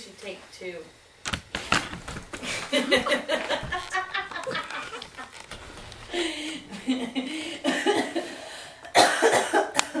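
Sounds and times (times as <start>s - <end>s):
person coughing: 8.9s - 10.0s.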